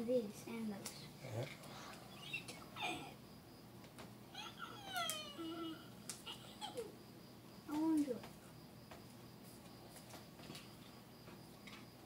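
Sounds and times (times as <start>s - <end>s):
cat meowing: 4.4s - 5.8s.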